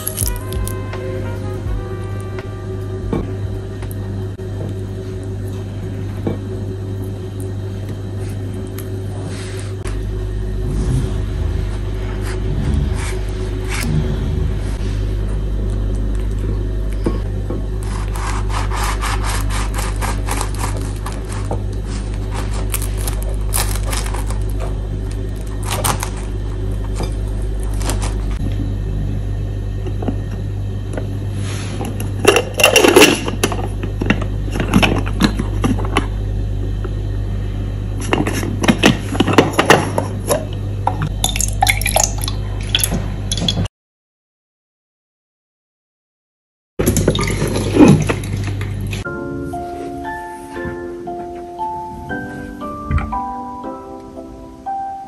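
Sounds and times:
knife sawing through bagel: 17.8s - 22.7s.

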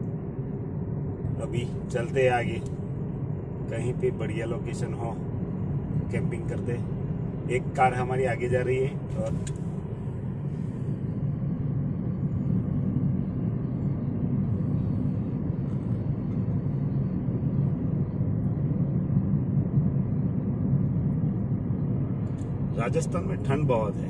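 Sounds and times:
road and engine rumble in car: 0.0s - 24.0s.

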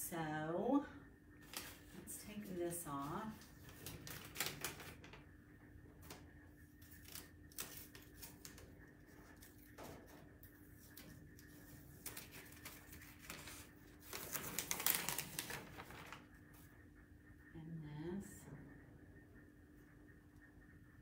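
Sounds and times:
tape peeling ticks: 1.4s - 2.0s, 3.4s - 5.3s, 6.0s - 16.7s
paper crackling and rustling: 1.4s - 5.3s, 6.8s - 16.6s.

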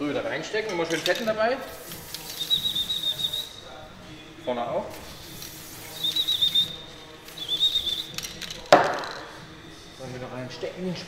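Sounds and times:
aerosol can spraying: 1.0s - 3.6s, 4.9s - 9.4s.

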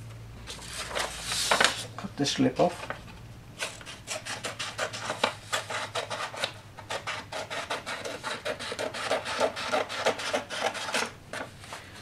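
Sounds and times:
steady low hum: 0.0s - 12.0s
paper rustling and crackling: 0.4s - 5.8s.

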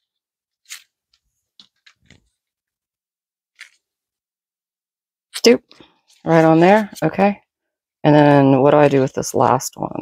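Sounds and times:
paper strips rustling: 0.5s - 2.5s.

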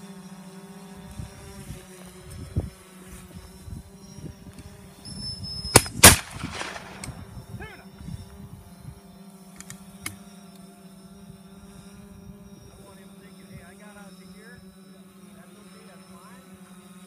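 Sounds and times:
gunshots with echo: 5.8s - 7.2s.

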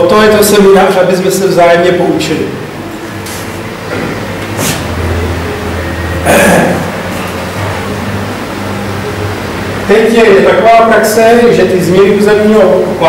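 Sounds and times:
person breathy vocal noise: 6.2s - 6.9s.

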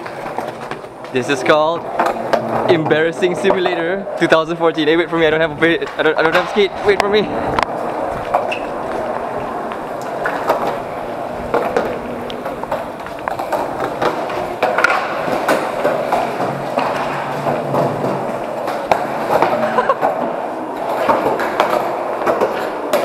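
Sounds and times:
wheels rolling on concrete: 0.0s - 23.0s.

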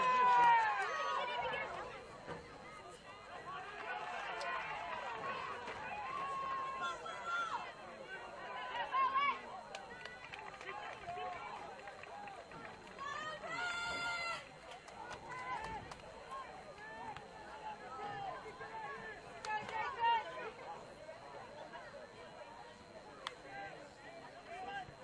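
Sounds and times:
people shouting and calling: 0.0s - 25.0s.

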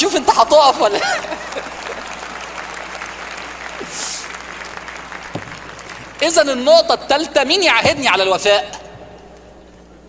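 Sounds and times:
audience applauding: 1.0s - 6.6s.

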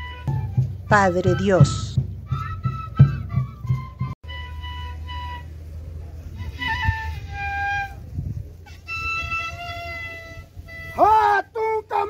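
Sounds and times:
low drum beats: 0.0s - 8.4s
flute melody: 0.0s - 12.0s.

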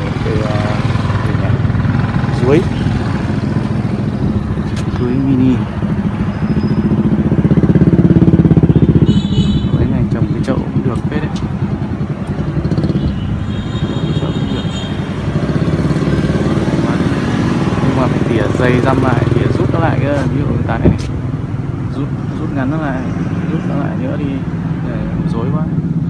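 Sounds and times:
motorbike engine running: 0.0s - 23.0s.

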